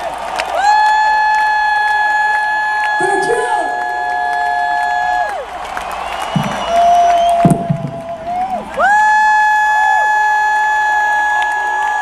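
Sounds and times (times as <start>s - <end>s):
crowd cheering: 0.0s - 12.0s
low thuds: 6.3s - 8.6s.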